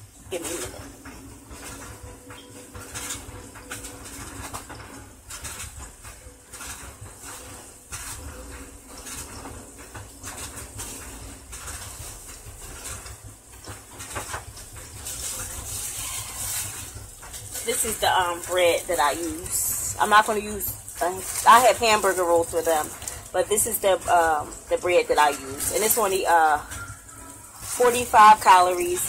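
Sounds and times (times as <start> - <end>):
burgers sizzling in a skillet: 2.8 - 29.0.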